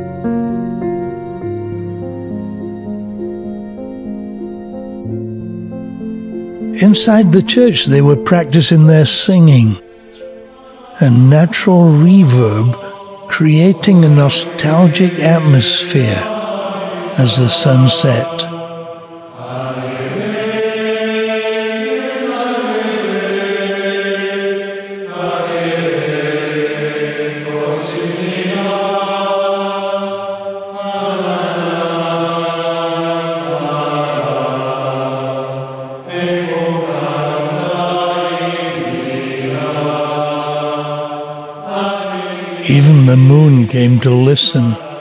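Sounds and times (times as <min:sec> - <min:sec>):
group singing long held notes: 0:06.8 - 0:45.0.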